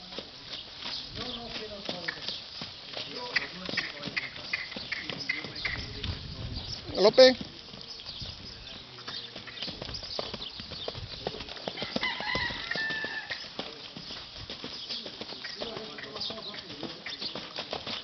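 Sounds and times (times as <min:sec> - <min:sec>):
horse hooves on sand: 0:00.0 - 0:18.0.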